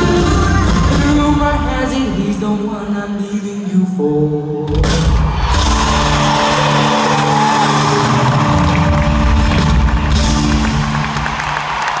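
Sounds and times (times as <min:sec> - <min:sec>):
live band playing chords: 0:00.0 - 0:02.8, 0:04.6 - 0:12.0
crowd cheering and screaming: 0:04.6 - 0:12.0.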